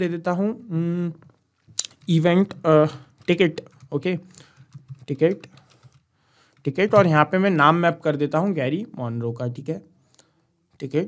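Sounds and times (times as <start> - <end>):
person speaking: 0.0 - 5.9, 6.6 - 9.9, 10.8 - 11.0
soft keyboard clicks: 1.2 - 7.3.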